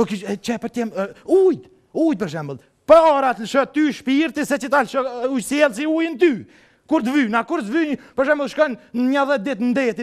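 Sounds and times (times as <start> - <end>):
man speaking expressively: 0.0 - 10.0.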